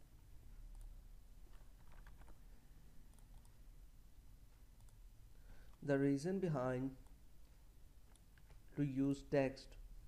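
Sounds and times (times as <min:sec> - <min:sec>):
computer mouse clicks: 0:01.5 - 0:02.4, 0:03.1 - 0:03.6, 0:04.8 - 0:05.0, 0:08.0 - 0:08.7
man speaking: 0:05.8 - 0:07.0, 0:08.7 - 0:09.8.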